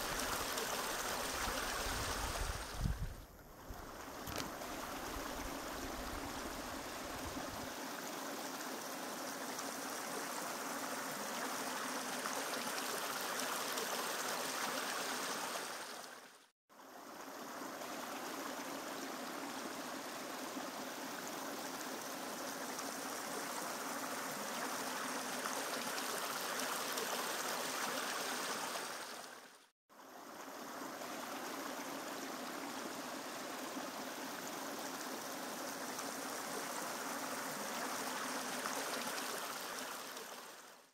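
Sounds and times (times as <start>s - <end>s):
stream water flowing: 0.0s - 40.9s.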